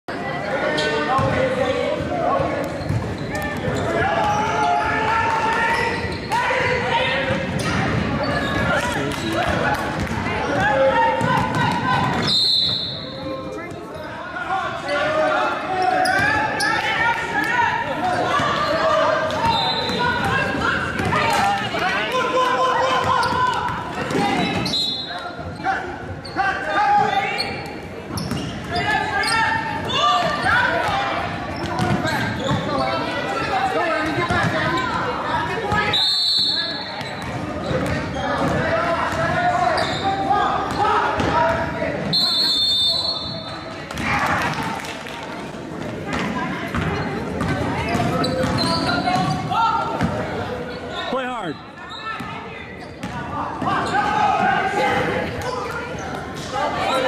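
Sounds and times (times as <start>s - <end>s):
voices in a gymnasium: 0.0s - 57.0s
sneaker squeaks: 0.6s - 1.4s, 2.4s - 6.6s, 7.2s - 14.2s, 14.8s - 16.9s, 18.0s - 21.4s, 22.9s - 44.1s, 46.1s - 54.5s, 55.2s - 57.0s.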